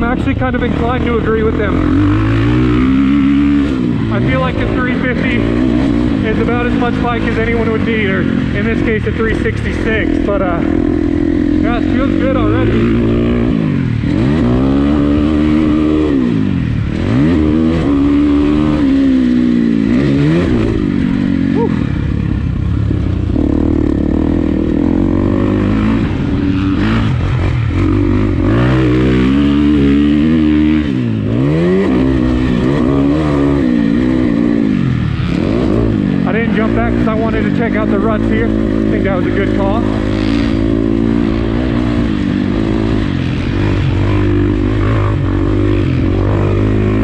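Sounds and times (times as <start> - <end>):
dirt bike engine revving: 0.0 - 47.0.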